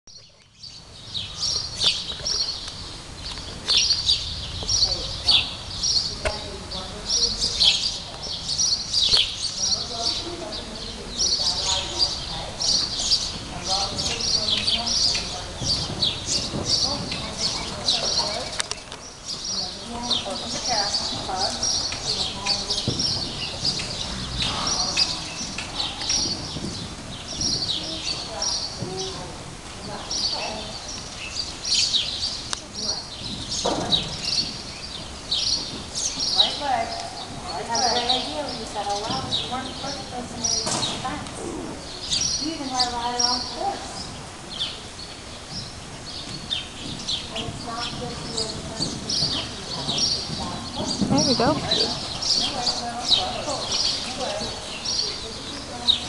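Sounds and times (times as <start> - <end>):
small birds chirping: 0.1 - 56.0.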